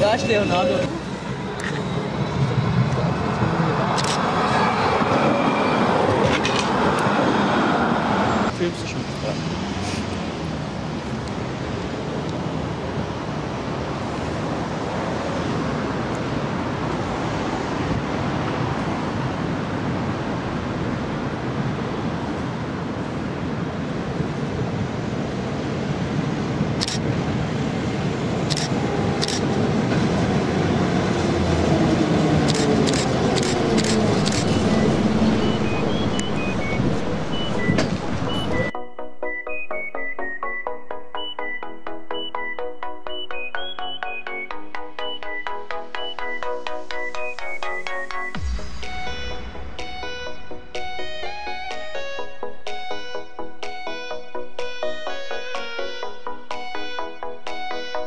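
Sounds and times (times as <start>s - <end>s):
tram rolling under overpass: 0.0s - 38.8s, 43.1s - 58.0s
road traffic noise: 0.0s - 58.0s
tramcar sharp clicks: 6.0s - 7.2s, 28.4s - 30.1s, 32.4s - 38.6s.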